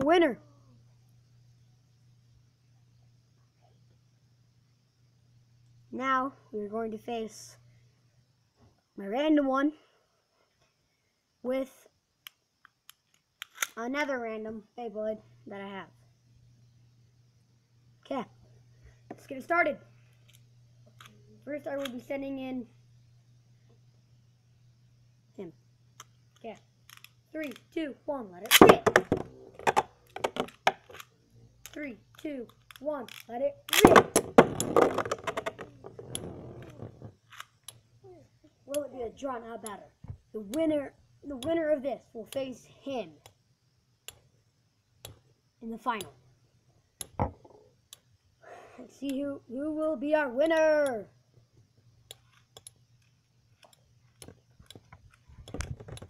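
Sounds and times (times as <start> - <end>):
person speaking: 0.0 - 0.7, 20.9 - 22.8, 27.3 - 30.6, 31.3 - 37.0, 38.0 - 43.2, 45.6 - 46.2, 48.5 - 51.1
plastic clicks and rattles: 26.0 - 27.6, 28.5 - 37.6, 52.2 - 56.0.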